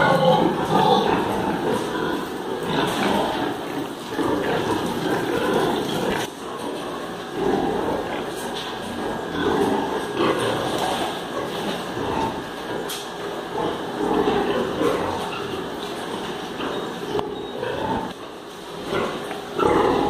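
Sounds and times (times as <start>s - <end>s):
sows grunting and calling: 0.0s - 20.0s.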